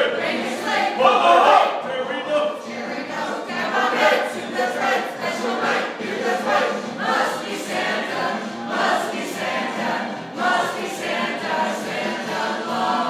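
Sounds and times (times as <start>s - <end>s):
group singing a carol: 0.0s - 13.0s.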